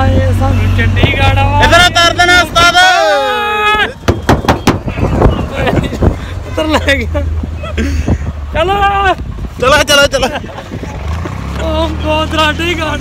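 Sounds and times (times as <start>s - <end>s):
men's loud drawn-out voices: 0.0s - 7.5s
men laughing: 4.7s - 9.0s, 10.0s - 12.0s.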